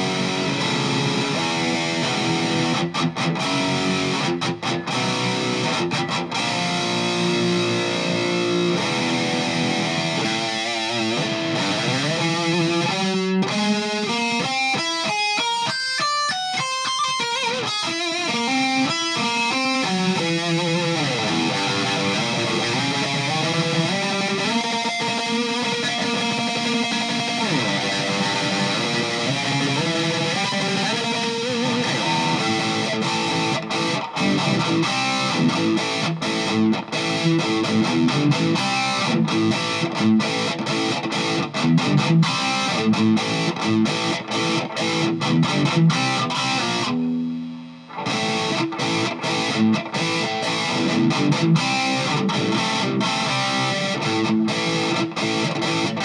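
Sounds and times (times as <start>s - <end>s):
heavily distorted electric guitar: 0.0s - 56.0s.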